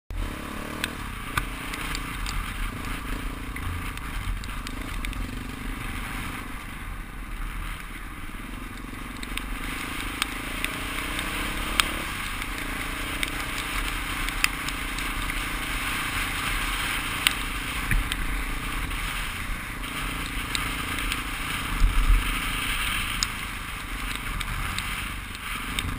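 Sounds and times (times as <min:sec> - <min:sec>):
dirt bike engine running: 0:00.1 - 0:25.9
gravel ticks: 0:00.1 - 0:25.9
hiss of tyres and wind: 0:00.2 - 0:25.9.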